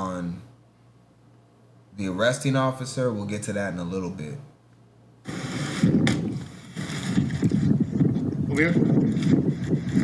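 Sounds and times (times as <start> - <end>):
wind buffeting microphone: 5.3 - 10.0.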